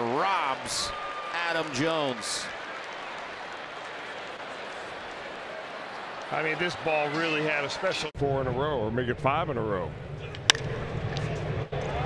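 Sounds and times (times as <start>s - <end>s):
ballpark crowd murmur: 1.7s - 8.1s, 9.8s - 12.0s
baseball bat hitting ball: 10.3s - 11.4s.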